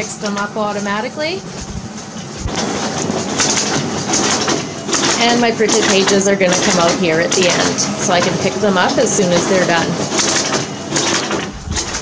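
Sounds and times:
copier whirring: 0.0s - 12.0s.

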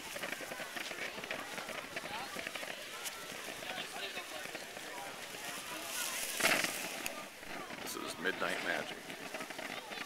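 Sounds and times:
firework crackling and popping: 0.0s - 10.0s.

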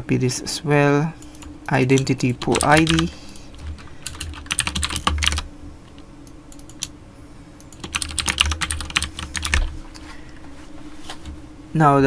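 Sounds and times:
typing on a computer keyboard: 1.3s - 5.4s, 6.5s - 6.9s, 7.7s - 9.7s.

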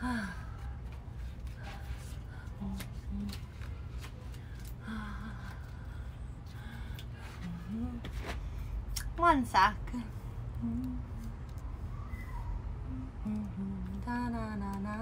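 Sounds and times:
woman murmuring and humming: 0.0s - 11.6s, 12.7s - 15.0s
steady low hum: 0.0s - 15.0s.

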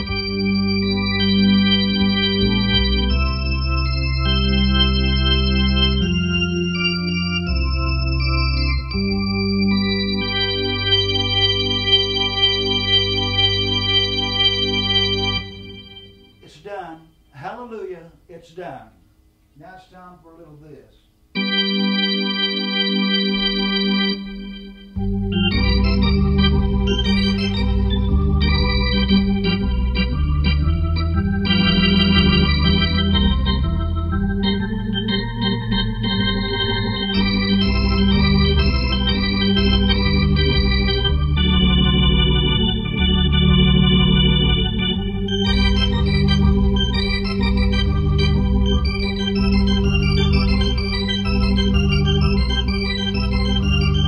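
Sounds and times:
organ through rotating speaker: 0.0s - 54.0s.

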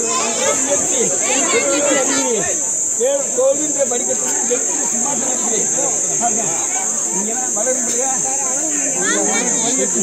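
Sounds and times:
crowd chatter: 0.0s - 10.0s
steady high-pitched buzz: 0.0s - 10.0s.

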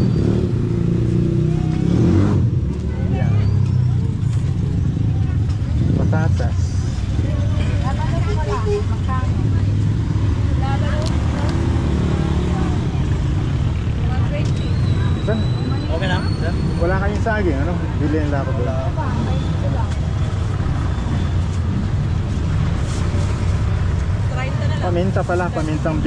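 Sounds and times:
traffic rumble: 0.0s - 26.0s.

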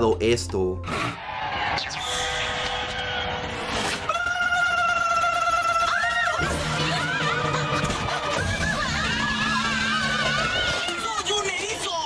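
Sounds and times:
cartoon voices shrieking: 4.0s - 11.3s.

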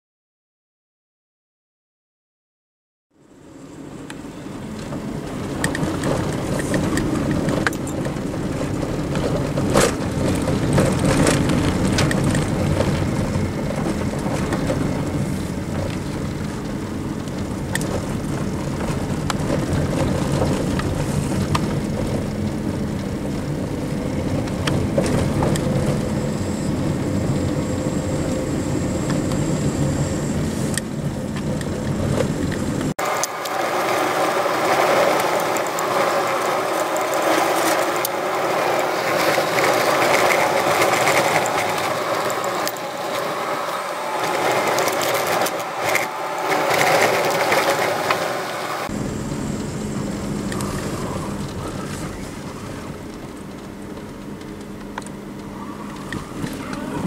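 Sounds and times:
car engine and road hum: 3.2s - 57.0s.

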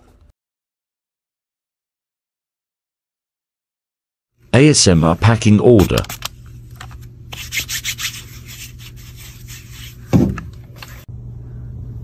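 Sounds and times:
steady low hum: 4.4s - 12.0s
hands rubbing together: 7.3s - 10.1s
dull thump: 10.1s - 10.5s.

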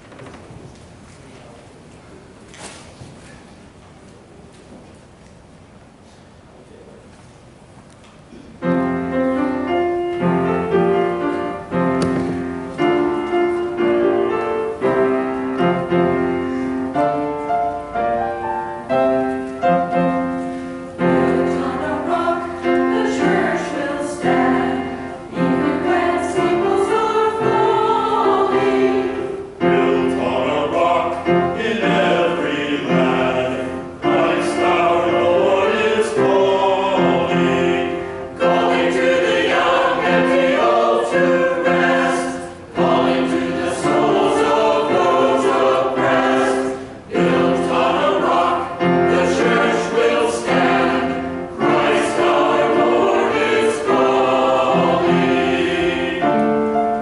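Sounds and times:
mixed choir singing: 9.6s - 57.0s.

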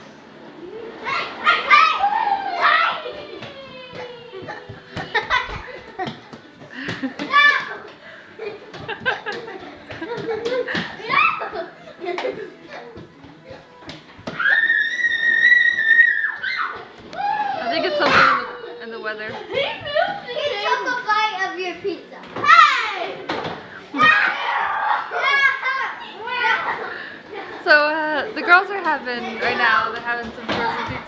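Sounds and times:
children shrieking and squealing: 0.6s - 6.2s, 7.0s - 7.9s, 10.7s - 12.0s, 14.3s - 21.4s, 22.4s - 23.2s, 23.8s - 27.2s
child squealing: 14.4s - 18.8s.

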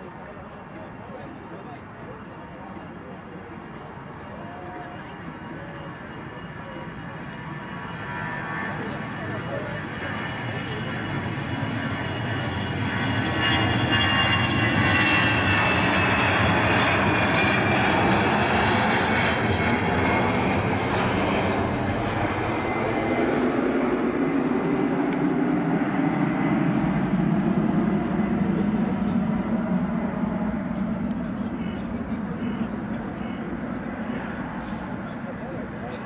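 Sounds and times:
jet airliner taking off: 0.1s - 36.0s.

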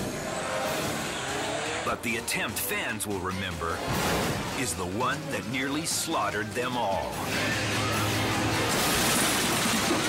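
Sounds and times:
engine running under throttle: 0.0s - 2.6s.

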